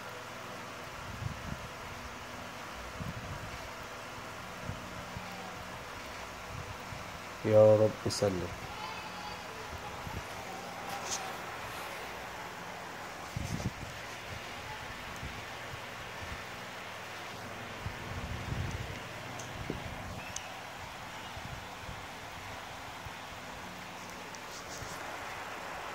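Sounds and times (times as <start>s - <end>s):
steady background hiss: 0.0s - 25.9s.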